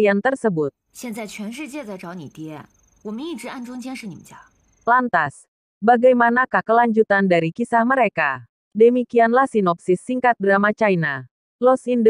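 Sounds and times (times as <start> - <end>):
woman speaking dialogue: 0.0 - 8.2.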